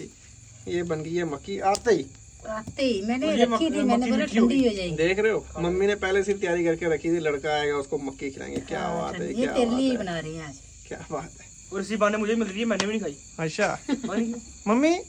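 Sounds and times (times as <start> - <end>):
crickets chirping: 0.0 - 15.0
people talking: 0.7 - 15.0.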